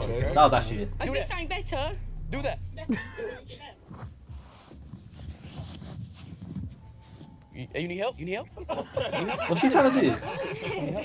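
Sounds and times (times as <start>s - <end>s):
person laughing: 2.9s - 3.6s, 8.6s - 11.0s.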